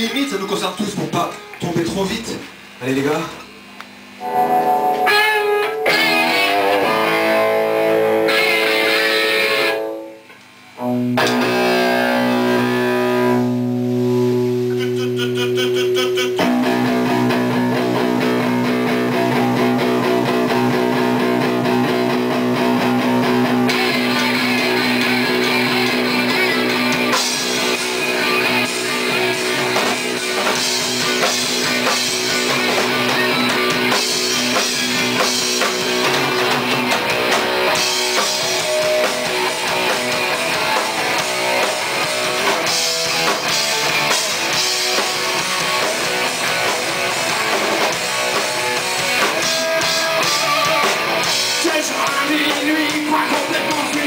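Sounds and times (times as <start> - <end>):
distorted electric guitar: 0.8 - 54.0
live rock band playing: 4.1 - 54.0.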